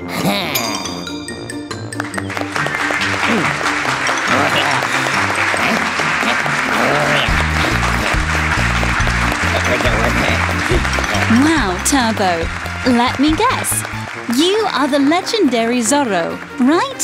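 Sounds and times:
cartoon background music: 0:00.0 - 0:17.0
crowd cheering and applauding: 0:01.9 - 0:17.0
bouncy bass line: 0:07.3 - 0:13.9.

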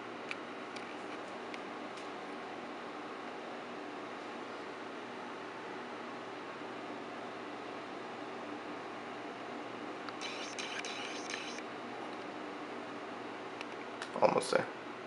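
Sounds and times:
faint low hum: 0:10.2 - 0:12.2.

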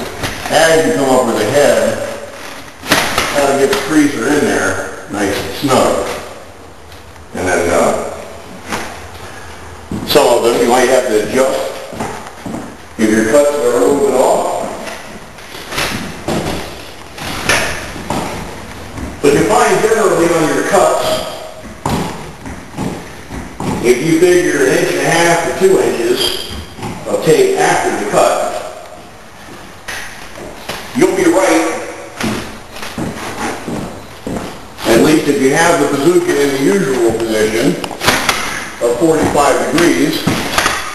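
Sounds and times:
knocks and thumps: 0:14.9 - 0:19.6, 0:21.6 - 0:24.2.

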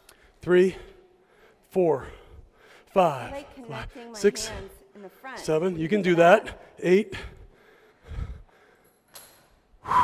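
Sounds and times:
man breathing hard: 0:00.0 - 0:03.0, 0:06.6 - 0:09.1.

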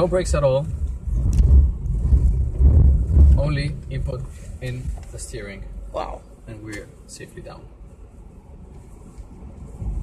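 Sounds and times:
low uneven cabin rumble: 0:00.0 - 0:10.0.

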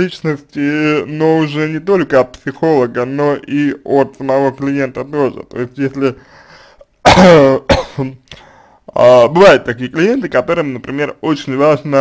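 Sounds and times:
man coughing: 0:07.0 - 0:08.2.

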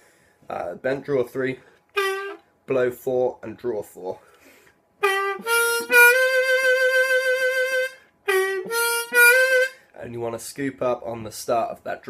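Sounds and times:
harmonica phrase with bent notes: 0:02.0 - 0:02.4, 0:05.0 - 0:09.9.

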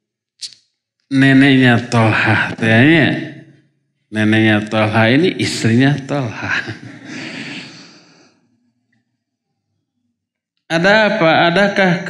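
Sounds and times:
man sighing: 0:07.1 - 0:08.2.

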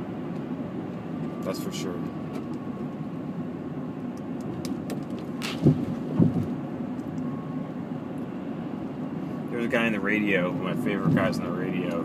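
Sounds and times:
road and engine noise in car: 0:00.0 - 0:12.0
short low thuds: 0:05.4 - 0:06.6.

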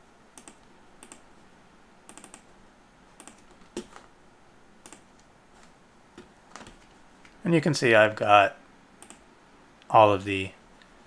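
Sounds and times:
keyboard and mouse clicks: 0:00.4 - 0:01.3, 0:02.1 - 0:02.5, 0:03.2 - 0:04.1, 0:04.8 - 0:05.3, 0:09.0 - 0:09.2.

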